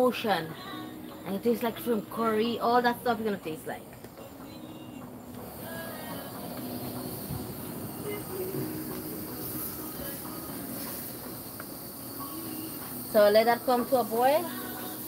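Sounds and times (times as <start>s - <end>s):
propane burner hissing: 0.0s - 15.0s
high insect trill: 5.4s - 15.0s.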